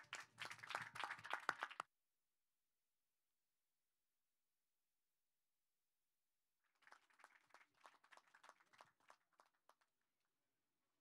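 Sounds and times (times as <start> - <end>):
faint hand clapping: 0.0 - 1.9, 6.8 - 10.0.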